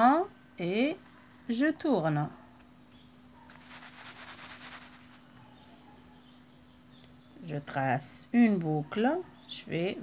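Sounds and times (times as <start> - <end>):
sand swishing in plastic plate: 3.5 - 5.3.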